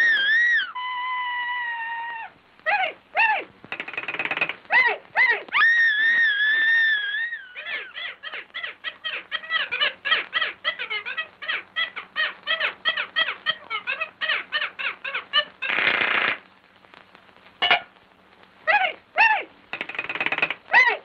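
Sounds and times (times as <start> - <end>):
burst of noise: 15.4 - 20.8.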